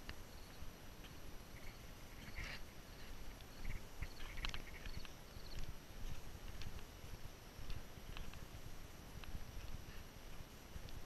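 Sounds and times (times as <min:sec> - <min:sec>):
footsteps on wooden steps: 0:02.4 - 0:11.0.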